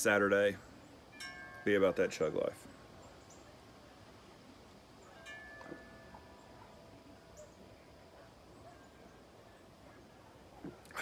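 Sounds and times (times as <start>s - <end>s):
faint wind chime ringing: 0.6s - 3.5s, 5.0s - 9.0s.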